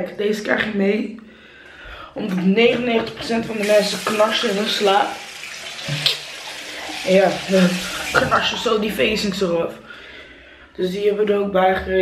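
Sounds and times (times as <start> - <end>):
water running: 2.8 - 9.6.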